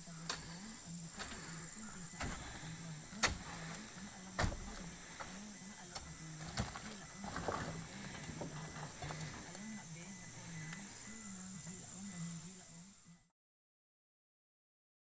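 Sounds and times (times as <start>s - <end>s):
faint low wavering hum: 0.0s - 13.3s
fruit bunches thudding in truck bed: 0.2s - 9.7s.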